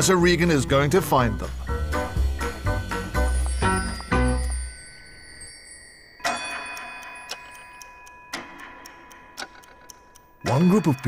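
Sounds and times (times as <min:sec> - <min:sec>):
clock ticking: 0:00.0 - 0:04.7, 0:06.2 - 0:11.0
soft sustained music chords: 0:00.0 - 0:05.8.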